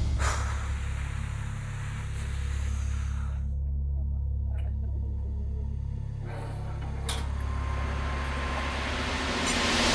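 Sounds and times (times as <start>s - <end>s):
deep bass drone: 0.0s - 9.9s
hissing swell: 7.4s - 9.9s.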